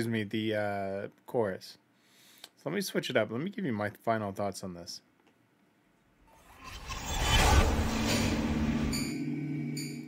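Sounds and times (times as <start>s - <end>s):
low hum: 6.2s - 10.0s
rushing noise: 6.3s - 9.8s.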